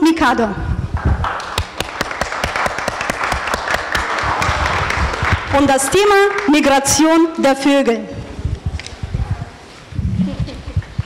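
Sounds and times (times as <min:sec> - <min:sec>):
audience applauding: 0:01.0 - 0:06.7.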